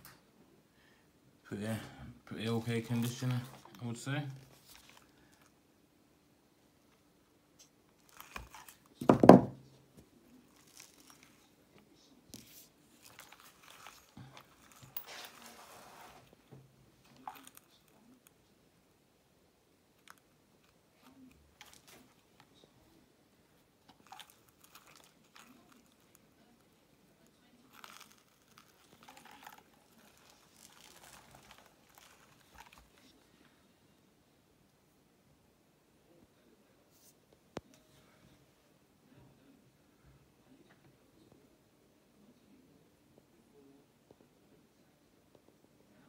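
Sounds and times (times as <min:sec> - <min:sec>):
handling rustles and clicks: 0:04.4 - 0:05.5, 0:07.6 - 0:09.2, 0:10.0 - 0:16.4, 0:17.0 - 0:18.2, 0:20.0 - 0:22.6, 0:23.8 - 0:26.4, 0:27.7 - 0:33.2.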